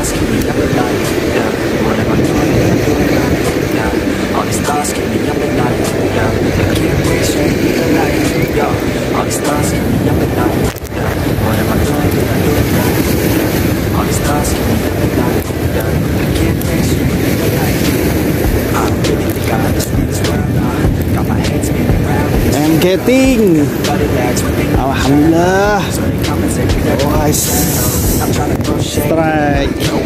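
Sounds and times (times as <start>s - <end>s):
muffled voices: 0.0s - 30.0s
sea water washing against rocks: 0.0s - 30.0s
wind on microphone: 0.0s - 30.0s.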